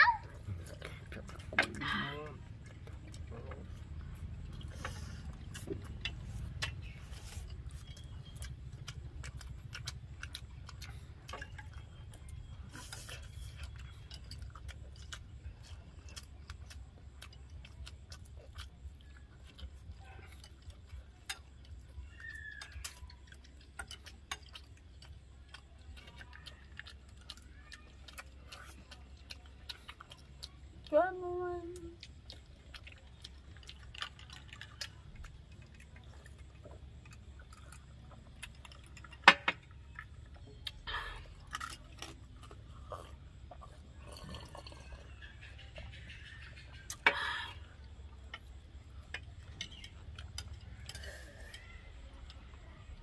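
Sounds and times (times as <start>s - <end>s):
chewing smacks: 0.0s - 53.0s
chopsticks clicking on plates: 38.4s - 39.8s.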